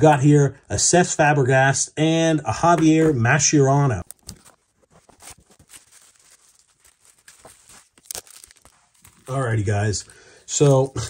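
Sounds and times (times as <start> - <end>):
cardboard box and cards handled: 4.0 - 11.0.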